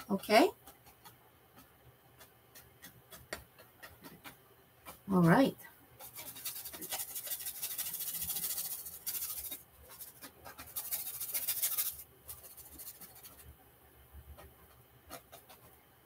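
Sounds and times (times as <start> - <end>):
paintbrush scrubbing on canvas: 6.0 - 13.5, 15.1 - 15.8.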